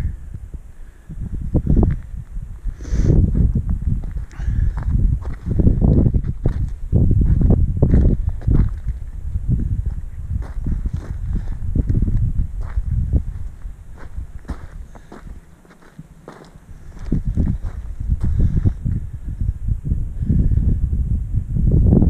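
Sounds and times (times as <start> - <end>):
wind buffeting microphone: 0.0 - 22.0
footsteps on stony ground: 3.2 - 19.0.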